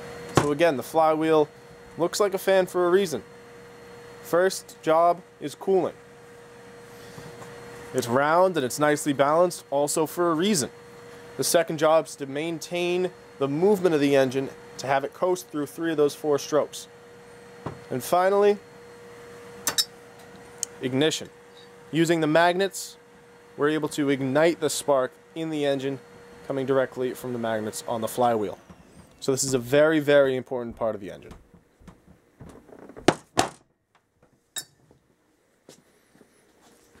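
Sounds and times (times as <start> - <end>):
ringing metallic clink: 19.7 - 19.9, 34.6 - 34.8
person speaking: 29.2 - 31.4.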